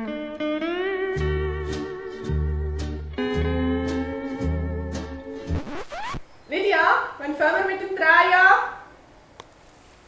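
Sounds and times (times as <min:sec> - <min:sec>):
slide guitar music: 0:00.0 - 0:05.8.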